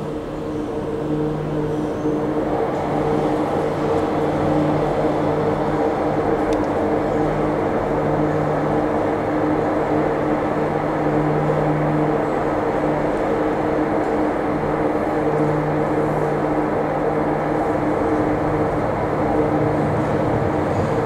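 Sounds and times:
funicular railway mechanical hum: 0.0 - 21.0.

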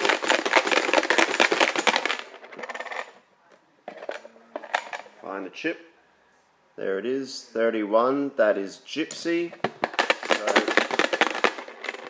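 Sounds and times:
chips rattling in plastic box: 0.0 - 3.2, 9.7 - 12.0.

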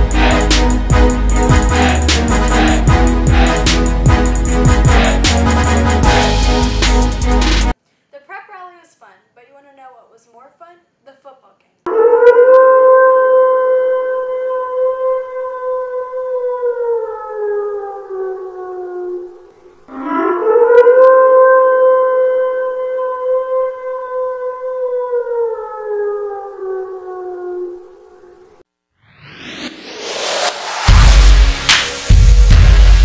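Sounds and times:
siren-like tone winding down: 19.9 - 21.5, 29.0 - 31.2.

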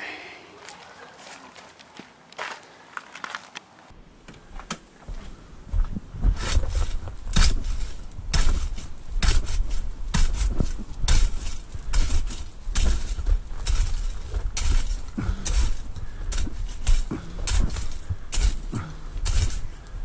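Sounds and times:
metal rake scraping concrete: 6.4 - 19.9.

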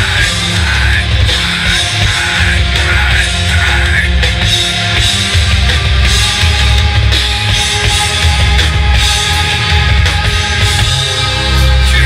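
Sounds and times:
bass guitar: 0.0 - 12.0
distorted electric guitars: 0.0 - 12.0
drum kit: 0.0 - 12.0.

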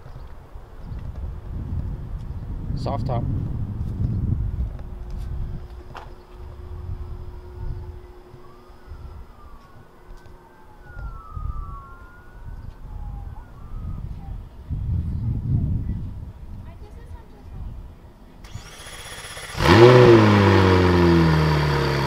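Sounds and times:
low rumble: 1.3 - 9.6
steady low hum: 3.3 - 9.5
faint sirens wailing: 5.0 - 14.8.

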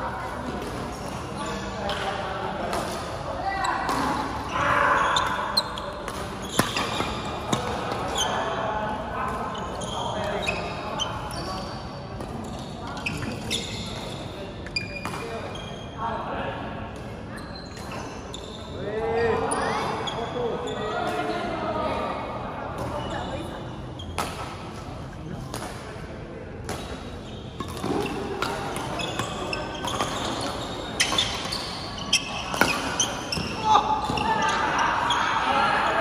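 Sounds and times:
shoes squeaking on court: 0.4 - 2.1, 3.6 - 16.0, 17.2 - 21.5, 22.8 - 25.0, 26.7 - 35.4.

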